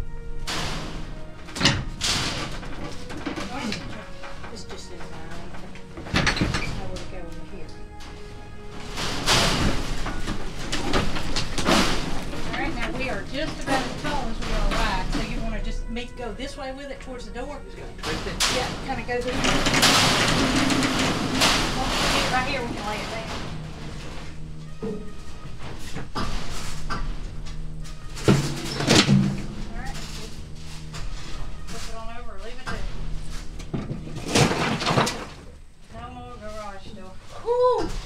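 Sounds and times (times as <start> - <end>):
metal door scraping on metal floor: 0.3 - 16.8, 17.7 - 35.6.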